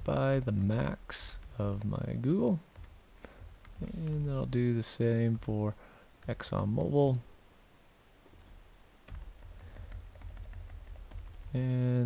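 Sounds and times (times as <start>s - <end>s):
typing on computer keyboard: 2.7s - 3.0s, 3.6s - 4.4s, 8.4s - 11.6s.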